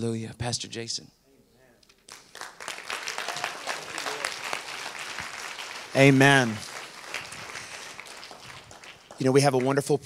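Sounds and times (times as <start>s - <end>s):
congregation applauding: 2.0s - 10.0s.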